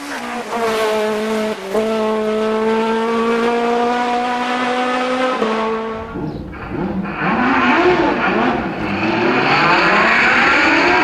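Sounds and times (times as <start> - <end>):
car engine at high revs: 0.0 - 11.0.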